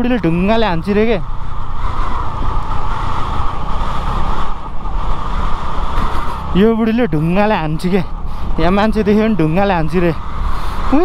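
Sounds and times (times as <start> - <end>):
motorbike engine rumble: 0.0 - 11.0.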